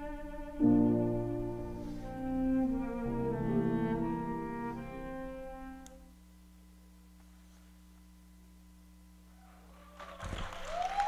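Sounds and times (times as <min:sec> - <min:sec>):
faint electrical hum: 0:00.0 - 0:11.0
audience applauding and cheering: 0:09.8 - 0:11.0
long rising whoop: 0:10.0 - 0:11.0.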